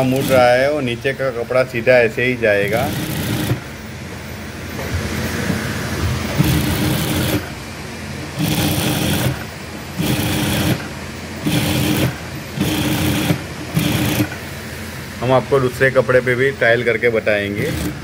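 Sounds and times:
sewing machine stitching: 0:00.0 - 0:00.7, 0:02.6 - 0:03.8, 0:06.2 - 0:07.6, 0:08.4 - 0:14.4, 0:17.5 - 0:18.0.

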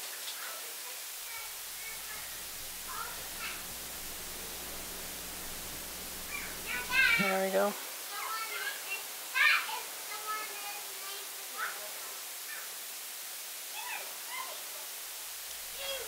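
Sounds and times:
low electrical hum: 0:01.2 - 0:07.8, 0:15.1 - 0:16.0.

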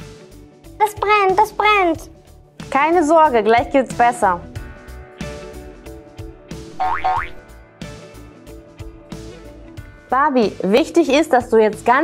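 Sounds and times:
playful music with plucked beat: 0:00.8 - 0:02.1, 0:03.8 - 0:08.2
rising cartoon tones: 0:06.7 - 0:07.4.

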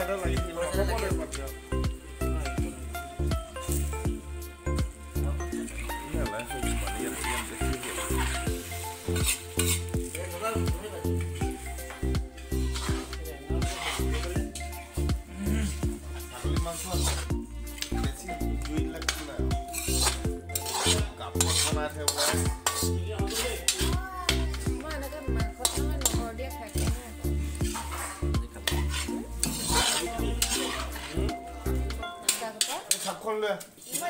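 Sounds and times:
music with steady beat: 0:00.0 - 0:32.6
food sizzling in a wok: 0:00.0 - 0:34.0
metal ladle scraping a wok: 0:00.0 - 0:34.0.

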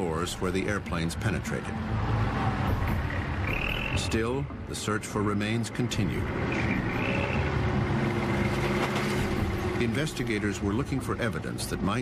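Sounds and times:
construction machinery engine drone: 0:00.0 - 0:12.0.

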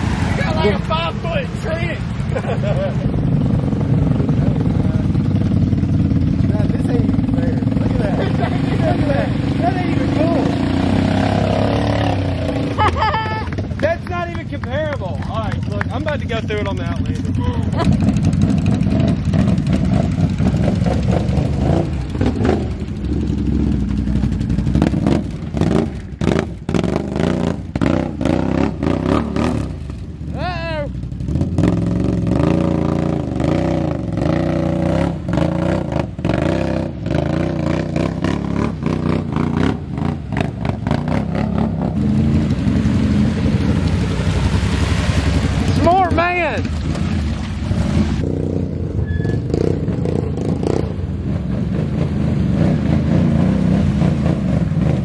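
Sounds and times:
atv engine revving: 0:00.0 - 0:55.0
tires churning mud: 0:00.0 - 0:55.0.

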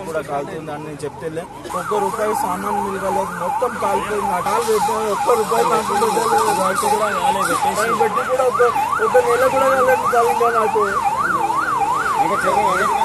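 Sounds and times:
crowd voices: 0:00.0 - 0:13.0
emergency siren yelping: 0:01.2 - 0:13.0.

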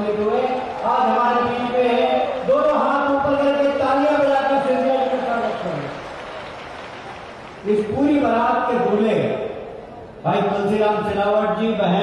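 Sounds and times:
man chanting over loudspeaker: 0:00.0 - 0:05.9.

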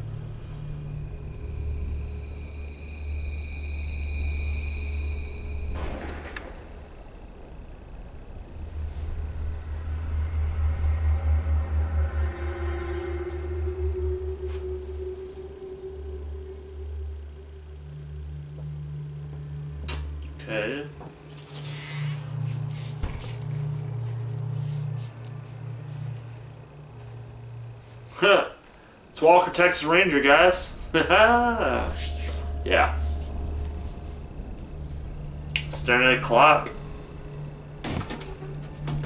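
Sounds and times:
deep rumbling drone: 0:00.0 - 0:39.0
single hit: 0:05.7 - 0:08.1
held high tones: 0:11.1 - 0:19.7, 0:20.8 - 0:38.9.

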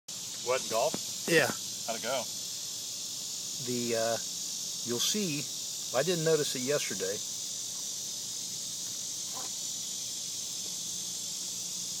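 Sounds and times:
insects chirping: 0:00.1 - 0:12.0.

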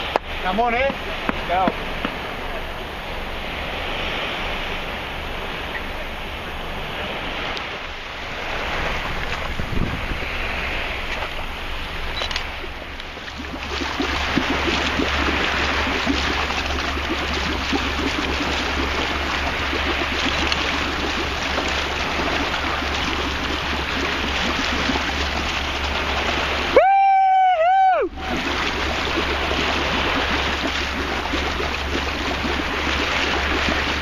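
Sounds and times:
boat engine humming: 0:00.0 - 0:34.0
sea waves washing: 0:00.0 - 0:34.0
wind on microphone: 0:00.0 - 0:34.0.

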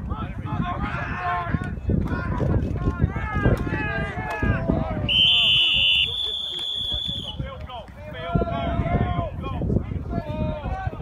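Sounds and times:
referee's whistle blast: 0:05.1 - 0:07.4.

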